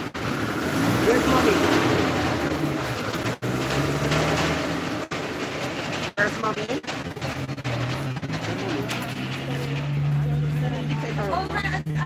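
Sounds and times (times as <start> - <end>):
loud rumbling noise: 0.0 - 12.0
crowd talking: 6.1 - 12.0.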